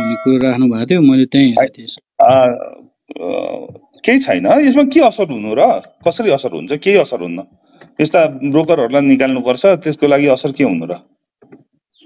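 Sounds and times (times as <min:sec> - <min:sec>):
voice making drawn-out vowel: 0:00.0 - 0:00.5.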